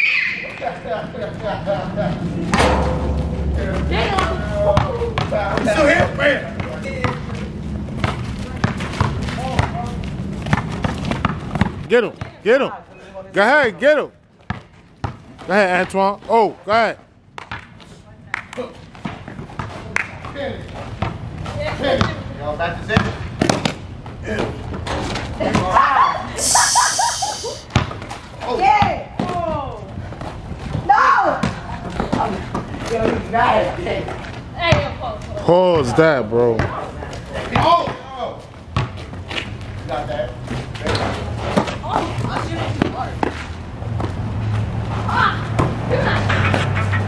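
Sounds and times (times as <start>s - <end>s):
basketball bouncing on asphalt: 4.7s - 5.6s, 6.6s - 12.4s, 14.3s - 15.5s, 17.3s - 17.8s, 18.9s - 22.3s, 34.6s - 35.0s, 38.7s - 39.7s
person shouting: 26.3s - 27.7s
background voices: 26.4s - 27.6s.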